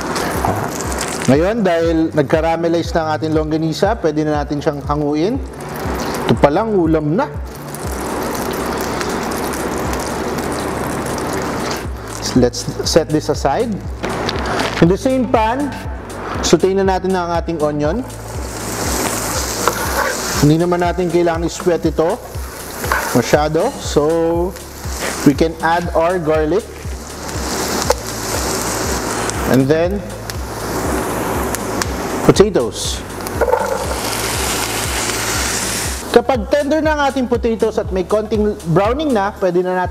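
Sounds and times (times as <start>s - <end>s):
oil sizzling in a frying pan: 7.4s - 14.7s, 17.9s - 32.3s, 33.0s - 36.2s.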